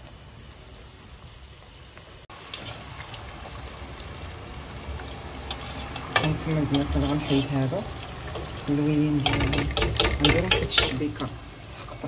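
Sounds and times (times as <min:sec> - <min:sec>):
dough deep-frying in oil: 0:00.0 - 0:12.0.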